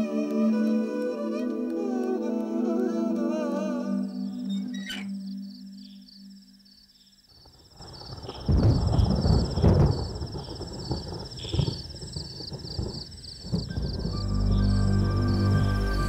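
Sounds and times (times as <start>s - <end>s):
thunder rumbling: 7.8s - 16.0s.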